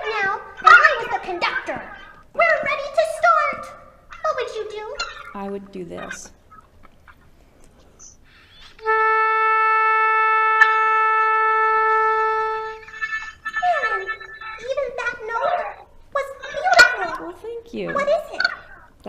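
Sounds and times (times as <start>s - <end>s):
oboe playing tuning note: 8.8s - 14.6s.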